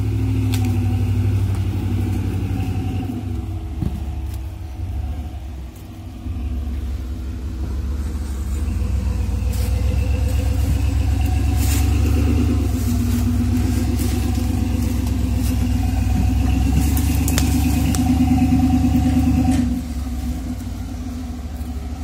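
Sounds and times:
truck engine pulling under load: 0:00.0 - 0:22.0.

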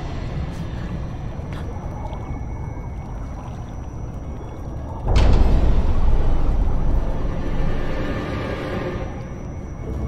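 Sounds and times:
low dark rumbling drone: 0:00.0 - 0:10.0.

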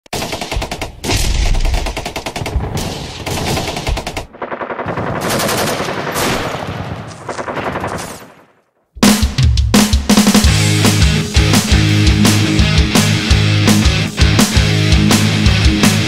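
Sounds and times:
automatic gunfire: 0:00.2 - 0:08.6.

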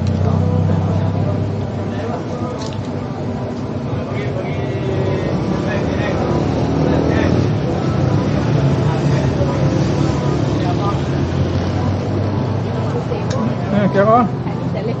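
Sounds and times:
low engine rumble: 0:00.0 - 0:13.7
indistinct voices chattering: 0:00.0 - 0:15.0.

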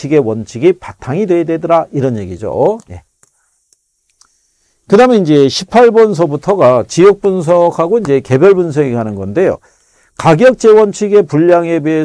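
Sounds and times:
man speaking: 0:00.0 - 0:03.2, 0:04.9 - 0:09.6, 0:10.2 - 0:12.0.

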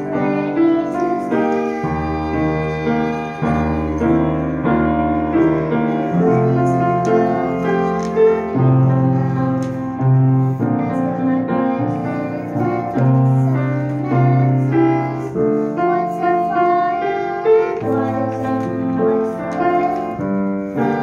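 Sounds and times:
girl singing: 0:00.0 - 0:21.0
piano accompaniment: 0:00.0 - 0:21.0.

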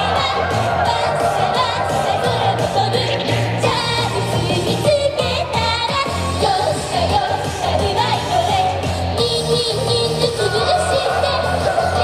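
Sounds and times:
female group vocals: 0:00.0 - 0:12.0
pop song through speaker: 0:00.0 - 0:12.0.

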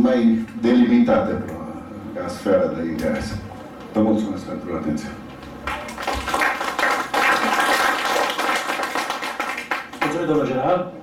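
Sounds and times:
audience applauding: 0:05.6 - 0:10.2.

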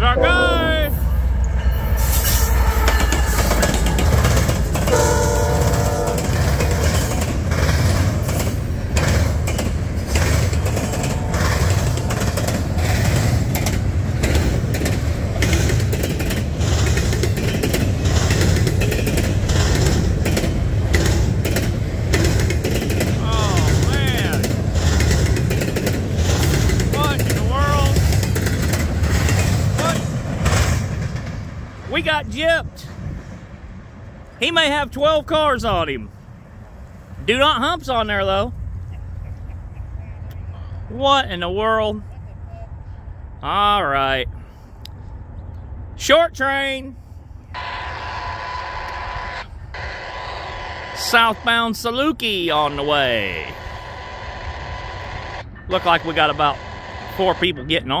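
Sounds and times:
high-pitched wheel squeals: 0:00.0 - 0:04.2
locomotive horn: 0:00.0 - 0:07.0, 0:47.6 - 0:52.0, 0:53.0 - 0:57.9
train wheels rumbling and clicking: 0:01.0 - 0:35.4.

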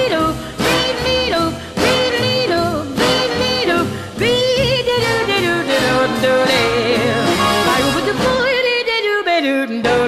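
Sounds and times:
swing band playing: 0:00.0 - 0:08.9.

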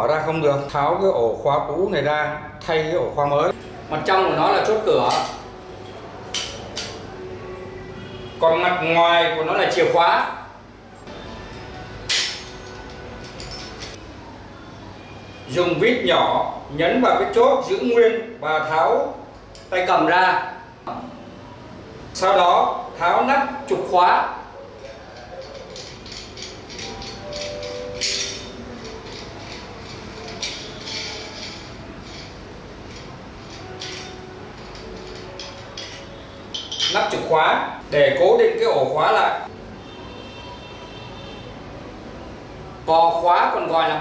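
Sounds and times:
metal lockset clinking: 0:03.5 - 0:07.7, 0:12.1 - 0:14.0, 0:24.7 - 0:37.3.

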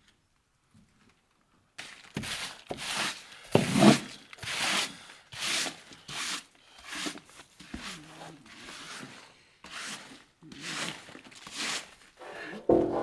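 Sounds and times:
hand brush sweeping grit: 0:01.8 - 0:12.6.

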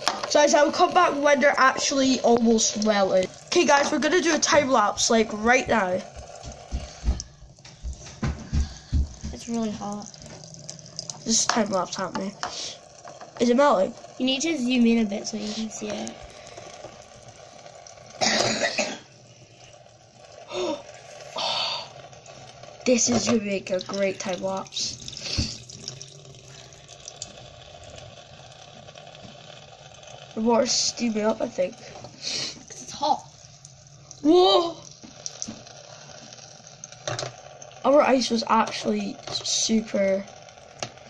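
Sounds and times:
tap water running into a sink: 0:00.0 - 0:41.0
throat clearing: 0:18.2 - 0:19.0
person coughing: 0:18.2 - 0:19.1.

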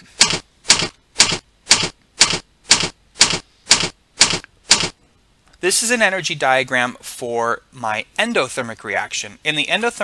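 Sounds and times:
short noisy bursts with clicks: 0:00.2 - 0:05.0.

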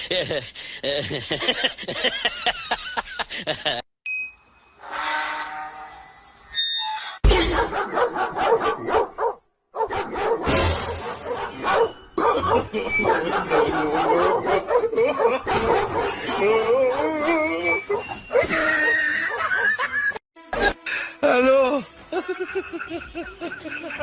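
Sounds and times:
dog barking: 0:07.4 - 0:16.5.

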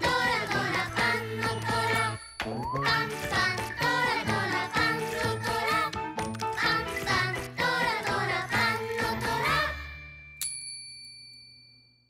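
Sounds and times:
children's jingle chord: 0:00.0 - 0:11.3
bright bell ding: 0:09.8 - 0:12.0.

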